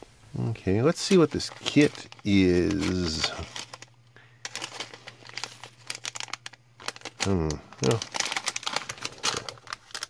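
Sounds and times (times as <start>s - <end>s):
plastic bag crinkling: 0.9s - 10.0s.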